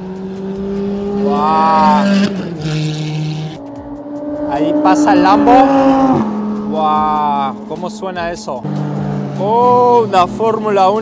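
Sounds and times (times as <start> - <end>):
sports car engines running: 0.0 - 11.0.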